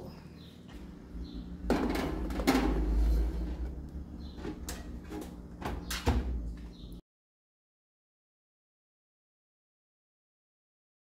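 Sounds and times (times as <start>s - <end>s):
low rumble: 0.7s - 5.6s
oven door shutting: 1.6s - 6.5s.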